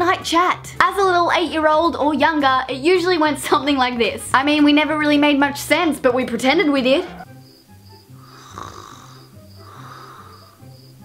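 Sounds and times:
soft background music: 0.0s - 11.0s
girl snoring: 8.1s - 10.9s.

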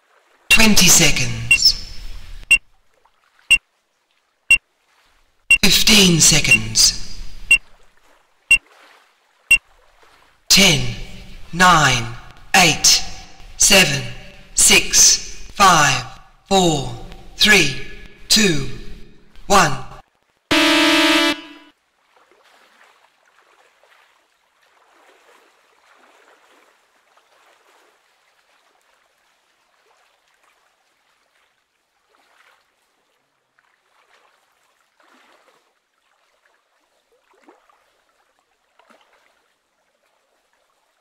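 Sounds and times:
high electronic beeps: 0.5s - 2.6s, 6.4s - 7.6s, 20.5s - 21.7s
race starting horn: 20.5s - 21.7s.

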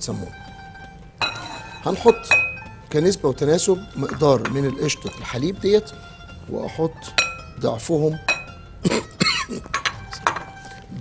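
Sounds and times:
spoon clinking glass bowl: 1.2s - 5.8s, 7.0s - 8.7s, 9.6s - 10.6s
short cough: 8.8s - 9.6s.

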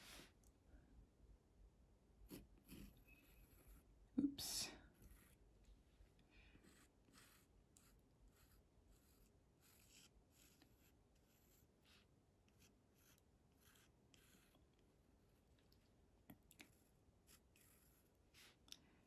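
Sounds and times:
pencil scratching on paper: 2.3s - 14.8s, 16.6s - 18.6s.

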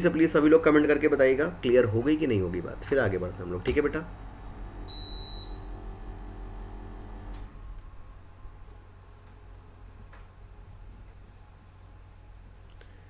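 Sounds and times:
faint low hum: 0.0s - 13.0s
high-pitched electronic beep: 4.9s - 5.6s.

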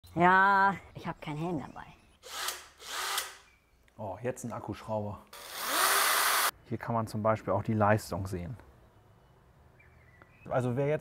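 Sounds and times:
cordless drill bursts: 2.2s - 3.5s, 5.4s - 6.5s.

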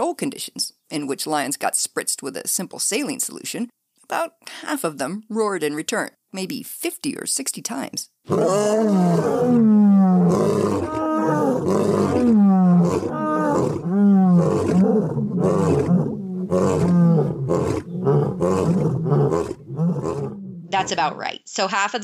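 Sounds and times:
lion grunting: 8.3s - 21.0s
lion roaring: 8.3s - 21.0s.

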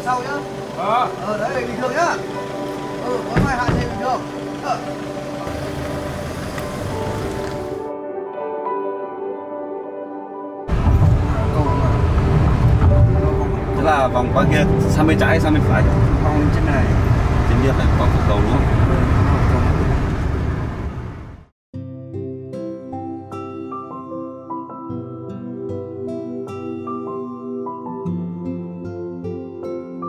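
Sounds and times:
car engine and tyre rumble: 0.0s - 7.9s, 10.7s - 21.5s
background music: 0.0s - 18.6s, 21.8s - 30.0s.

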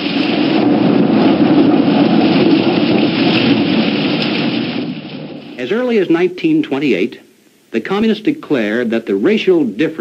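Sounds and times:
low rumble of thunder: 0.0s - 6.4s
heavy rain: 0.0s - 10.0s.

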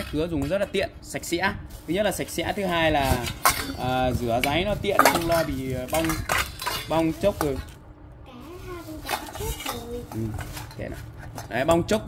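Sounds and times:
metal bowls clinking: 3.0s - 7.7s.

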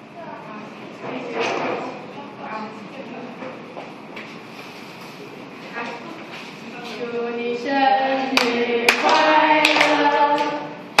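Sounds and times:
group singing birthday song: 6.6s - 11.0s.

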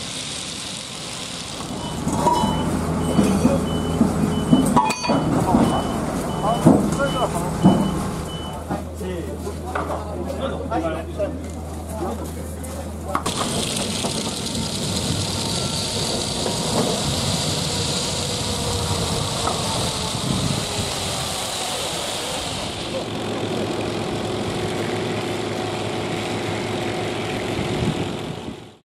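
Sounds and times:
boat engine running: 0.0s - 28.8s
voices: 1.6s - 26.5s.

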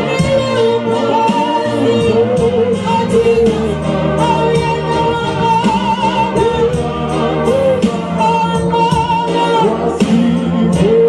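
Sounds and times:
music accompaniment with regular beat: 0.0s - 11.0s
woman singing gospel song: 0.0s - 11.0s.

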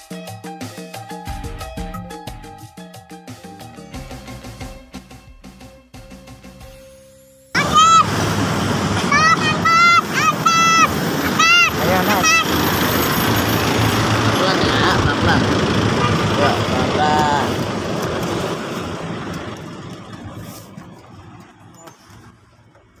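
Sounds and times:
minibus pulling up: 0.6s - 23.0s
street traffic: 0.9s - 23.0s
brief voices: 8.9s - 12.9s.

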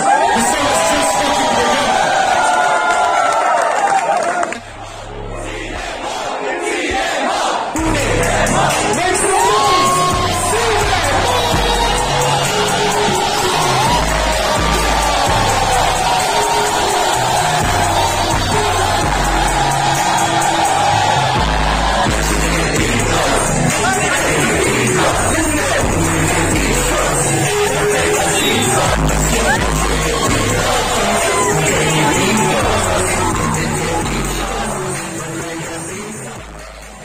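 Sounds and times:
crowd cheering and shouting: 0.0s - 37.0s
heavy pulsing bass: 4.6s - 6.0s, 7.8s - 37.0s
hip-hop music over club speakers: 7.7s - 37.0s.

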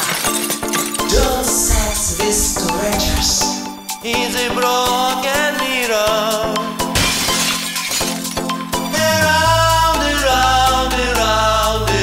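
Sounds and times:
drum beat: 1.1s - 3.8s
breaking glass sound effect: 6.9s - 8.4s.

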